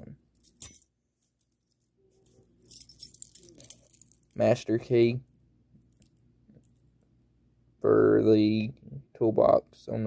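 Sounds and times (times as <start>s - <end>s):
keys clinking: 0.4s - 4.4s.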